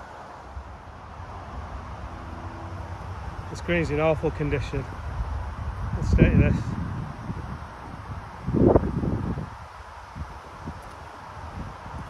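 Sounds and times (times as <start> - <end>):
wind buffeting microphone: 0.5 - 12.0.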